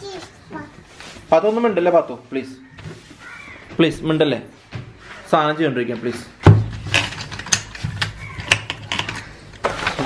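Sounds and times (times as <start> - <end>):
pencils clicking in a plastic cup: 6.9 - 10.0.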